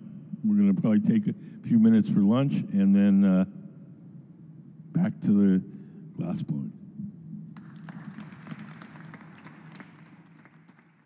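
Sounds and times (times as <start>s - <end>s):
audience applauding: 7.6s - 11.0s.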